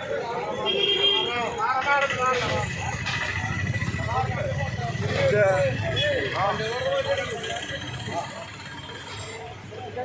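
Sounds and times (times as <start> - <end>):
men talking and calling out: 0.0 - 10.0.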